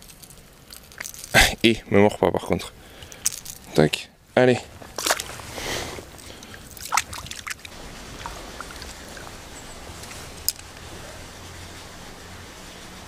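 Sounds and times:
river water flowing: 0:04.7 - 0:13.0
short water splashes: 0:04.9 - 0:10.0.

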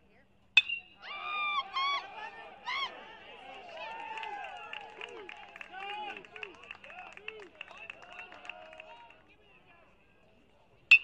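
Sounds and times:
metal bat striking ball: 0:00.6 - 0:01.0
voices yelling and cheering: 0:01.0 - 0:09.2.

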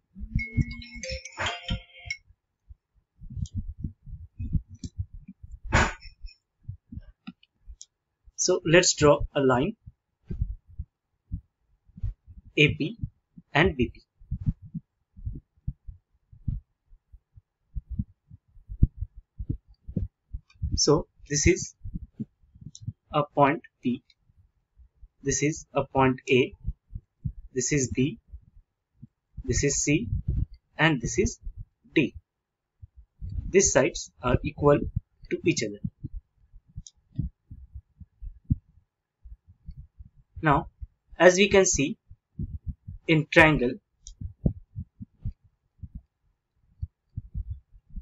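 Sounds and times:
muffled handling thumps and knocks: 0:32.9 - 0:33.5.

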